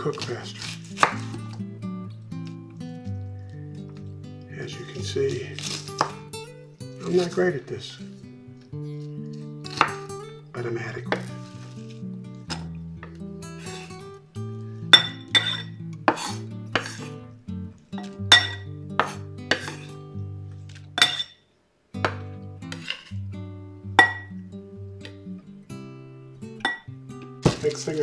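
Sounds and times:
background music: 0.0 - 21.2, 22.0 - 28.0
knife chopping on wooden board: 0.6 - 1.4, 5.6 - 6.2, 9.7 - 10.1, 16.1 - 17.0, 18.4 - 19.9, 27.4 - 27.8.

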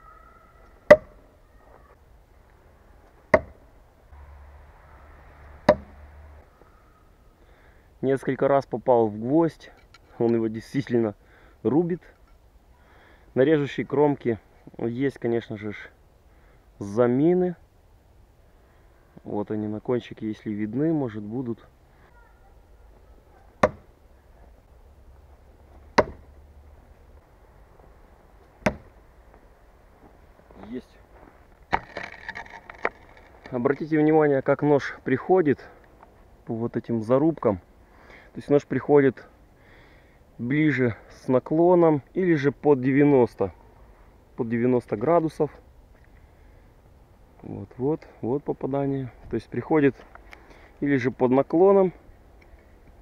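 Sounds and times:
throwing knife striking wooden log: 0.9 - 1.2, 3.3 - 3.6, 5.6 - 6.0, 23.6 - 23.9, 25.9 - 26.3, 28.6 - 28.9.

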